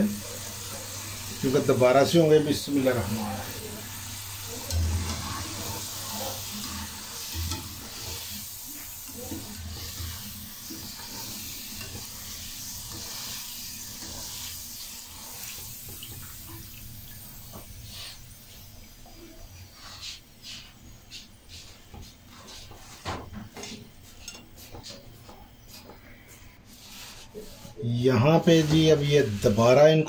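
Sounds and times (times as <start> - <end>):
wire skimmer stirring: 0.0 - 16.6, 21.5 - 26.1
fries sizzling in oil: 0.0 - 30.0.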